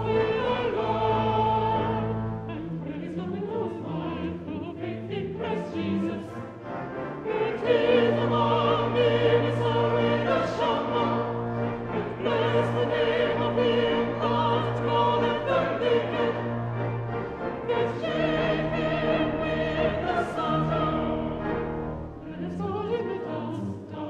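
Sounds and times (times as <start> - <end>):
mixed choir singing: 0.0 - 24.0.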